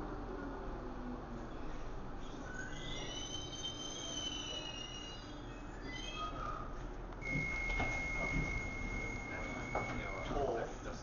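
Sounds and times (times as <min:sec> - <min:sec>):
train brakes squealing: 0:02.4 - 0:05.7, 0:07.2 - 0:10.5
steady high door beep: 0:07.2 - 0:10.4.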